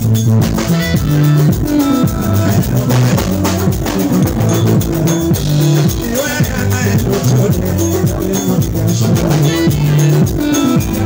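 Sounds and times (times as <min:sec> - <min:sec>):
bass line: 0:00.0 - 0:11.0
drums steady beat: 0:00.0 - 0:11.0
guitar: 0:00.0 - 0:11.0.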